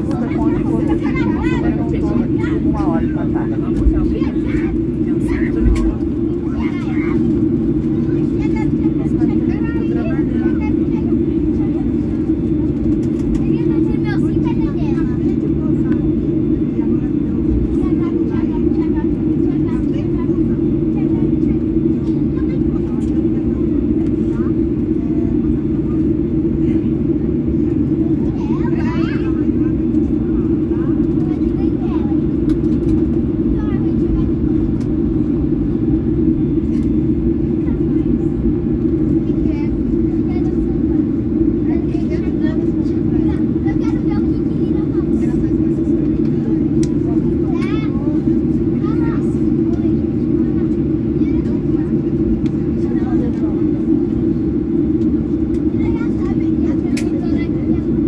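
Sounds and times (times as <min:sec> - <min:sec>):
aircraft cabin drone: 0:00.0 - 0:58.0
passengers talking faintly: 0:00.0 - 0:58.0.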